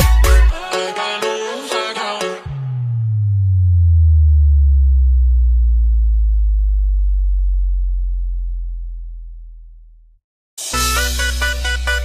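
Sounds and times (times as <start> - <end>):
synthesized sub-bass drop: 2.5 - 10.2.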